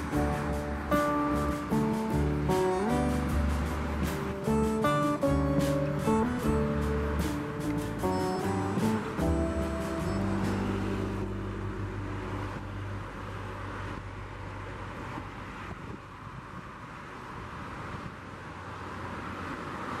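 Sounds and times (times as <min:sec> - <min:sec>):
music: 0:00.0 - 0:14.0
highway traffic passing: 0:00.0 - 0:20.0.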